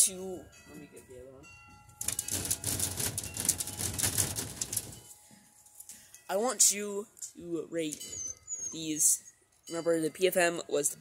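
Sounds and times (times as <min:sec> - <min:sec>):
faint wind chimes: 0:00.0 - 0:11.0
rustling and clattering: 0:02.0 - 0:05.9.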